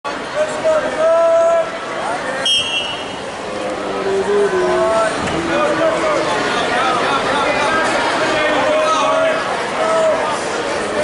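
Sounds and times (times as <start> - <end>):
referee's whistle: 2.4 - 3.2.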